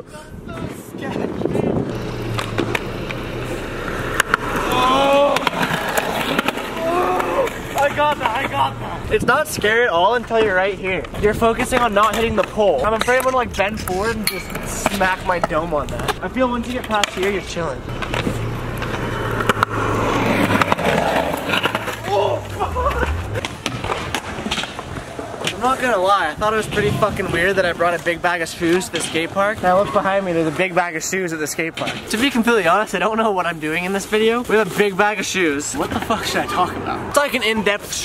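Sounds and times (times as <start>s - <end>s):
skateboard wheels rolling on concrete: 0.3s - 38.0s
skateboard clacks: 3.8s - 8.7s
person shouting: 4.6s - 5.5s, 6.8s - 7.5s, 22.0s - 23.4s.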